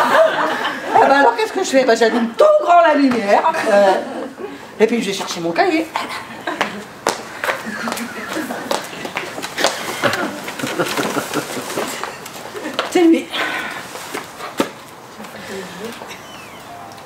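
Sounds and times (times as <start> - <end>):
footsteps on hard floor: 6.7 - 12.9.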